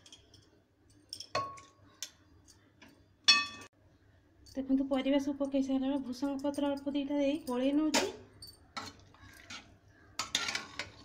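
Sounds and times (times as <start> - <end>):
metal spatula scraping a pot: 8.7 - 11.0.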